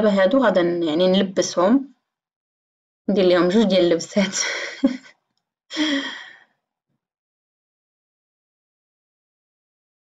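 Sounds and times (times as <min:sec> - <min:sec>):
woman sighing: 0:05.7 - 0:06.5.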